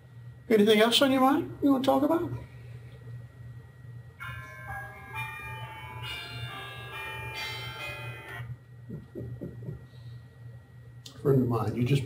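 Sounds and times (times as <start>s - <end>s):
phone ringtone chiming melody: 4.2s - 8.5s.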